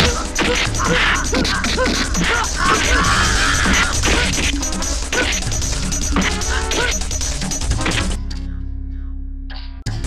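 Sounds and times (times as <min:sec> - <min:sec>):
loud background music: 0:00.0 - 0:10.0.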